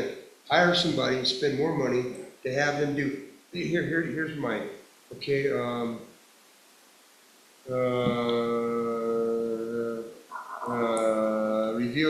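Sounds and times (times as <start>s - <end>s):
man's hesitation sounds: 0.0s - 6.0s, 7.7s - 12.0s.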